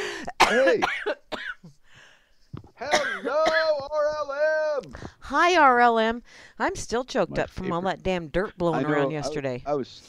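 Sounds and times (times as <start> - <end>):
faint breath: 0.0 - 0.3, 1.8 - 2.5, 6.2 - 6.6
short cough: 0.4 - 1.8, 2.8 - 3.8.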